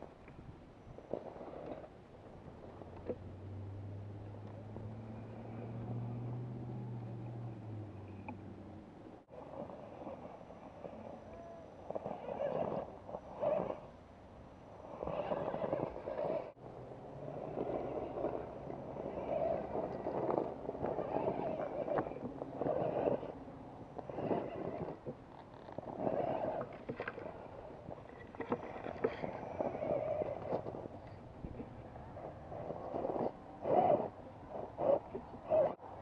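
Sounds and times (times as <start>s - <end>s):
toy car electric motor whining: 9.4s - 13.9s, 14.8s - 16.6s, 17.3s - 23.4s, 24.0s - 35.8s.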